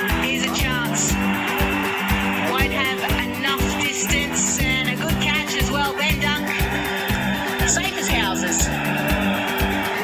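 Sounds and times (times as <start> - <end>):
music with fast beat: 0.0 - 10.0.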